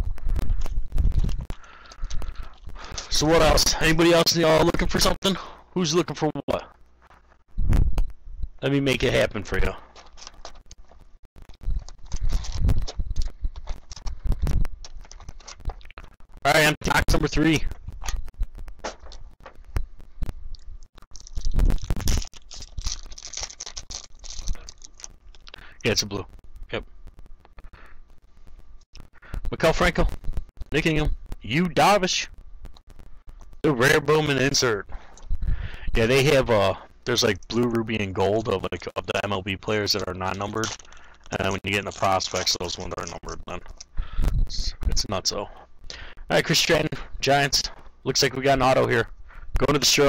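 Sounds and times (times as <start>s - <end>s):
foil wrappers crinkling and tearing: 9.8s - 16.4s, 21.0s - 26.1s, 37.9s - 44.2s.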